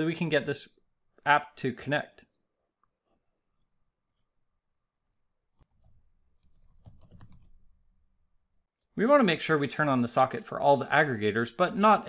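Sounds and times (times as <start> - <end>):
keyboard typing clicks: 5.6 - 7.6.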